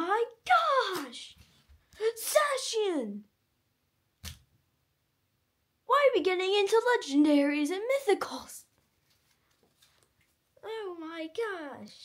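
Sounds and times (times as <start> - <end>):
child's voice: 0.0 - 1.4, 2.0 - 3.3, 5.9 - 8.7, 10.6 - 12.0.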